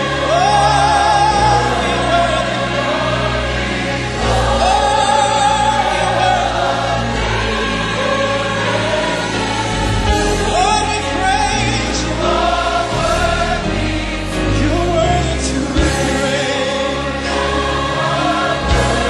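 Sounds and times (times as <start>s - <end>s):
choir singing: 0.0s - 19.0s.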